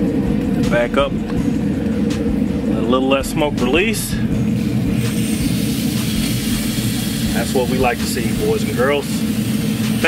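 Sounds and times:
grill humming and rumbling: 0:00.0 - 0:10.0.

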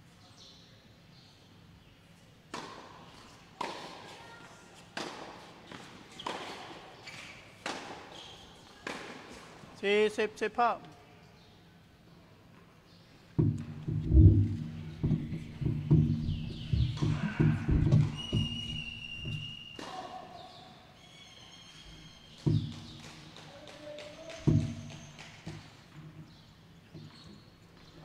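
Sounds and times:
tennis balls struck and bouncing: 0:02.5 - 0:04.2, 0:05.0 - 0:09.7, 0:13.4 - 0:20.0, 0:22.4 - 0:26.3.

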